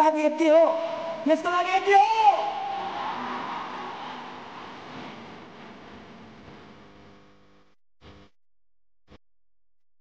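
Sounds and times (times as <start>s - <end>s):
man shouting over a pa system: 0.7s - 2.9s
large crowd noise: 2.4s - 6.6s.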